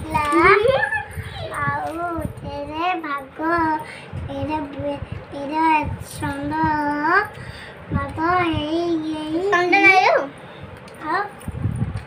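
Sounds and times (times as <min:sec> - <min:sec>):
girl chanting in a sing-song: 0:00.0 - 0:10.4.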